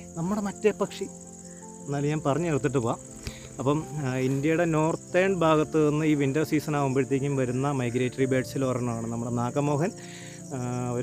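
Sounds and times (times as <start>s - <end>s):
crickets chirring: 0.0s - 11.0s.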